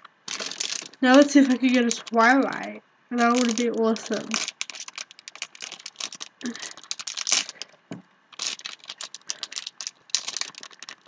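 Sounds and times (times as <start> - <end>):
foil wrapper crinkling: 0.3 - 11.0.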